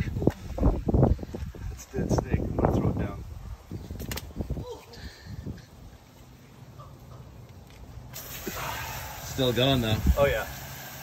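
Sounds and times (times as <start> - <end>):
body slapping onto concrete: 4.0 - 4.4.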